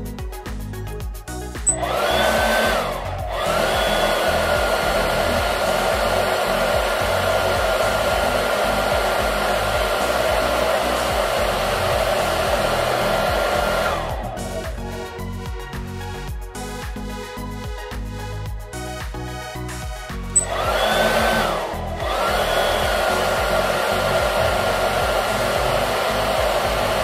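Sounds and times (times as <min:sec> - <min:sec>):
electric blower motor whirring: 0:01.6 - 0:16.3, 0:19.9 - 0:27.0.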